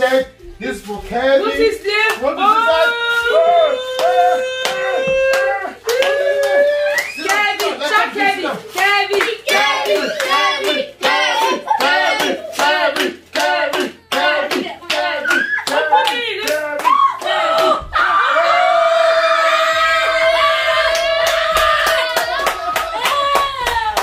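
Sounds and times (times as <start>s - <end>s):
sing-song voices: 1.4s - 24.0s
hands clapping in rhythm: 2.0s - 2.4s, 3.9s - 17.9s, 20.8s - 24.0s.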